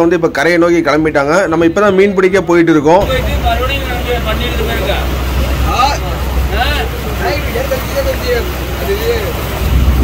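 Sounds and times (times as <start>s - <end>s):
boat engine drone: 3.0s - 10.0s.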